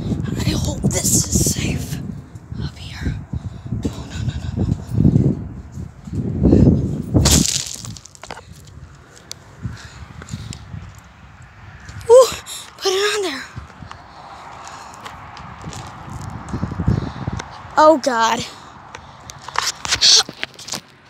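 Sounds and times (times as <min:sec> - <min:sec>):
footsteps on gravel: 0:07.2 - 0:09.3.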